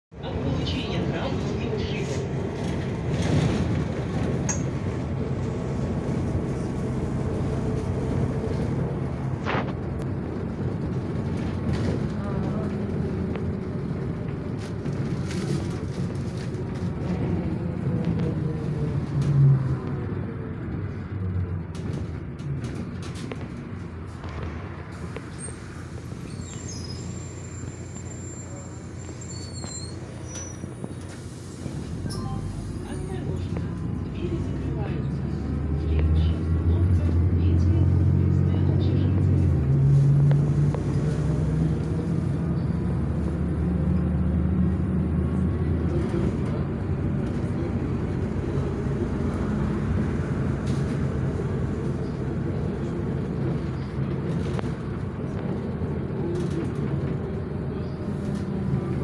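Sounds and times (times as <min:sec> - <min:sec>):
bus engine and tyre rumble: 0:00.1 - 0:59.0.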